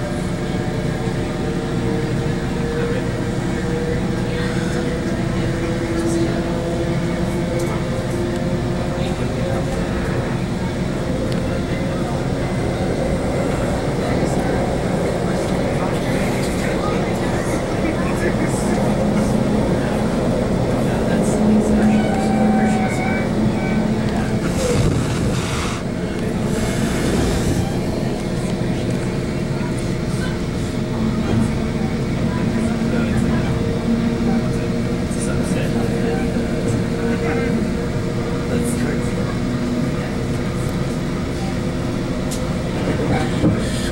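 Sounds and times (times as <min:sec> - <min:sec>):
train wheels rumbling on rails: 0:00.0 - 0:43.9.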